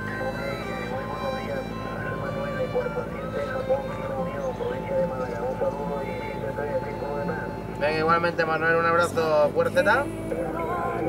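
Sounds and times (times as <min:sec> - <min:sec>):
man talking over radio speaker: 0:00.0 - 0:10.1.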